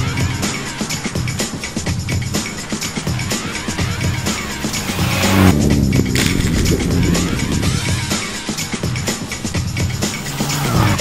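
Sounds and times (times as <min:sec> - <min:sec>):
rally car engine revving: 0:02.8 - 0:08.8, 0:10.0 - 0:11.0.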